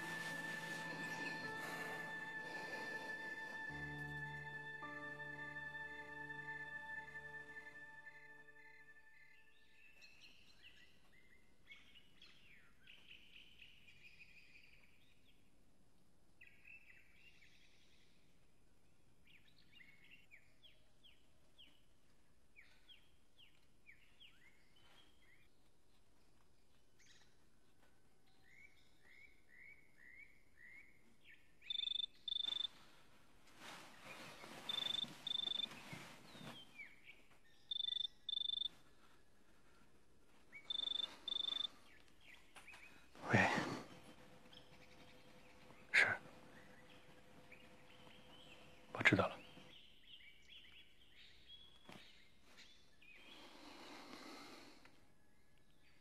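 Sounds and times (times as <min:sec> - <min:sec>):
rustling: 0:00.0 - 0:04.1, 0:31.8 - 0:48.9
birds chirping: 0:00.0 - 0:15.1, 0:28.4 - 0:33.0, 0:33.6 - 0:56.0
telephone ringing double beeps: 0:40.7 - 0:41.7.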